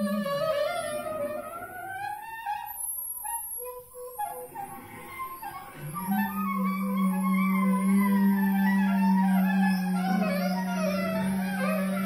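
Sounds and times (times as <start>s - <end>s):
wavering gliding higher tones: 4.9s - 12.0s.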